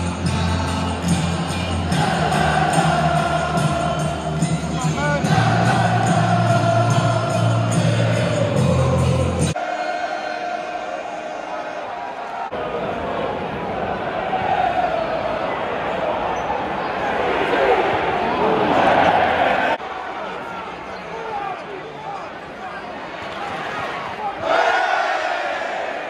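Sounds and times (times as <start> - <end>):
crowd chanting and shouting: 0.0 - 26.0.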